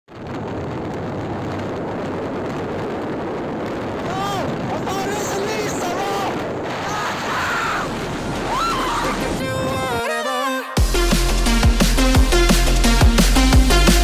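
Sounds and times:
wind rushing on microphone: 0.1s - 10.1s.

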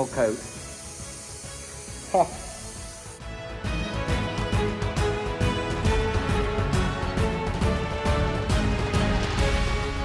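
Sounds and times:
compressed air hissing: 0.0s - 3.6s
background music: 0.0s - 10.0s.

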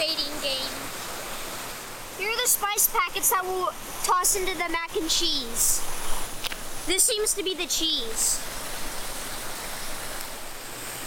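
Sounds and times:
waterfall rushing over rocks: 0.0s - 11.0s.

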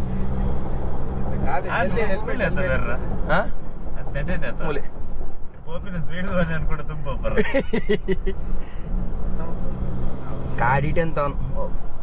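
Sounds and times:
car engine hum: 0.0s - 12.0s
road noise rumble: 0.0s - 12.0s.

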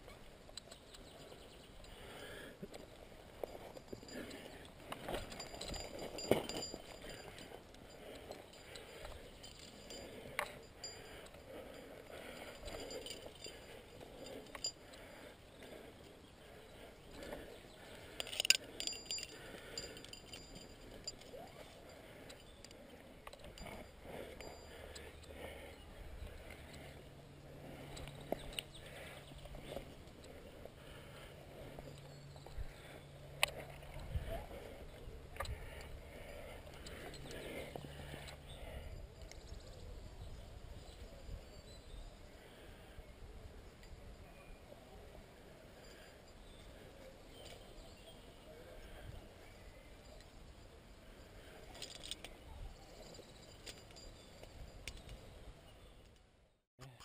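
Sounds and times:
rustles and scrapes of movement: 0.0s - 43.0s
metal carabiners clinking: 0.6s - 39.8s, 45.7s - 56.4s.

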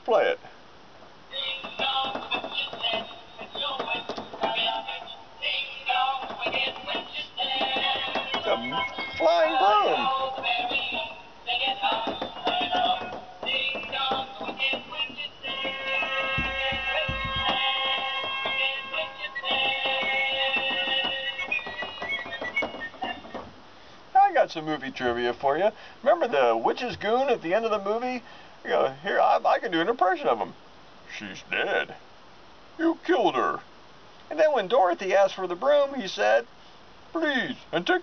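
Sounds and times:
tinny toy song with singing: 1.3s - 23.3s.

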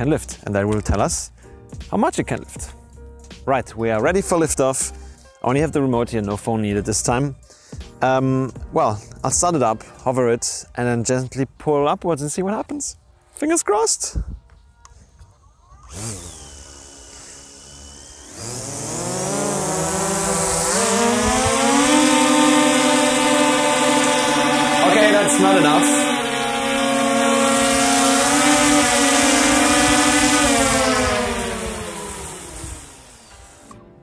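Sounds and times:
drone propellers whining: 15.7s - 33.8s.

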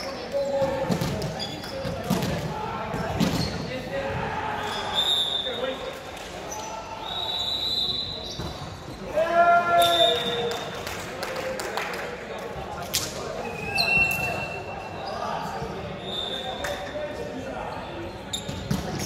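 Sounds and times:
players' voices: 0.0s - 19.0s
loud shout: 9.1s - 10.5s.

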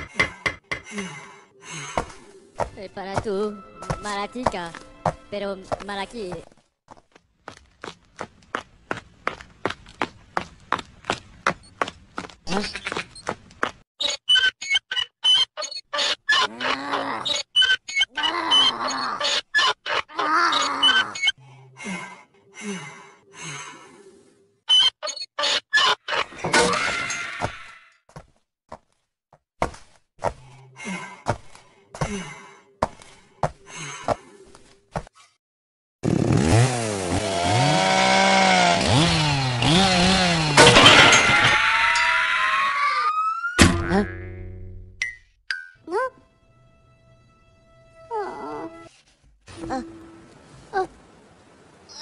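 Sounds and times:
chainsaw buzz: 36.0s - 40.8s.

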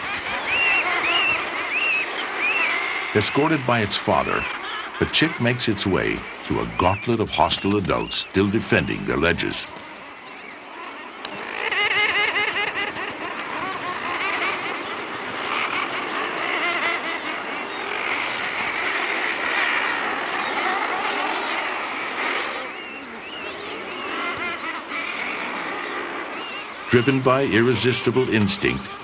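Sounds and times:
seabird colony calling: 0.0s - 29.0s.

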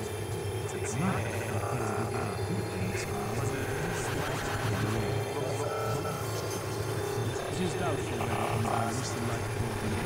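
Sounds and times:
low synthesizer drone: 0.0s - 10.0s.

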